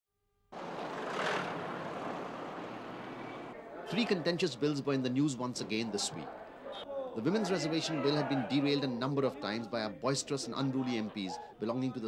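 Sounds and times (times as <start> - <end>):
van passing close by: 0.6 - 3.6
road traffic: 0.6 - 3.8.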